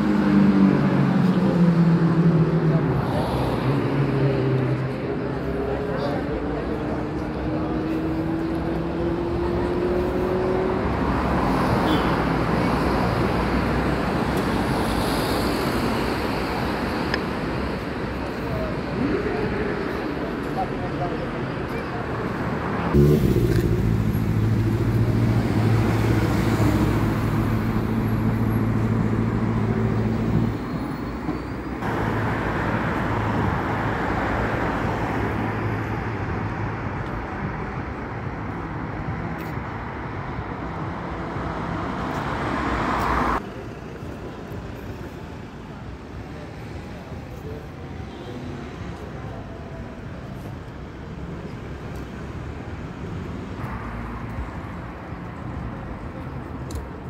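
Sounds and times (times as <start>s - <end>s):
cars driving past: 0.0s - 19.0s, 22.0s - 45.3s
vehicle engine humming: 22.6s - 39.3s.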